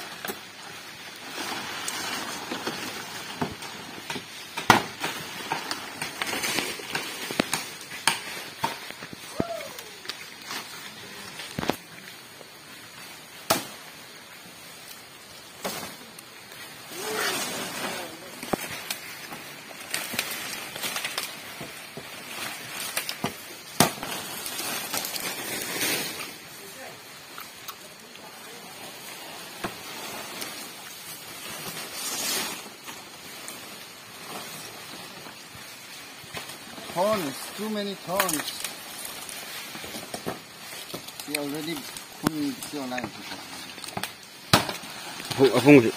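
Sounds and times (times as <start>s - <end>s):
dry rustling of palm fronds: 0.0s - 45.9s.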